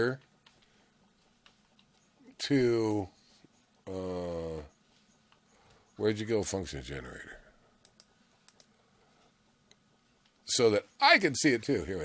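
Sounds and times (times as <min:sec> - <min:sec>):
computer mouse clicks: 0:07.8 - 0:08.8.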